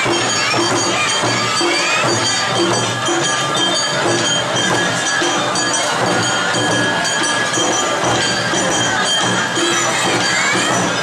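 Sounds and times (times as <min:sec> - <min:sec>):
drums: 0:00.0 - 0:11.0
ringing gong: 0:00.0 - 0:11.0.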